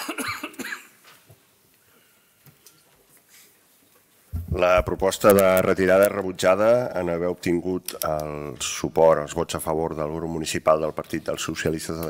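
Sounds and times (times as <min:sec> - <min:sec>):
person coughing: 0:00.0 - 0:01.0.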